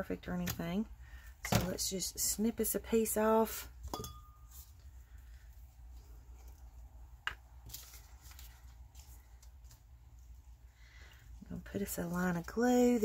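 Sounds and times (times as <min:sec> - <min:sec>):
paper rustling: 0:07.6 - 0:10.4.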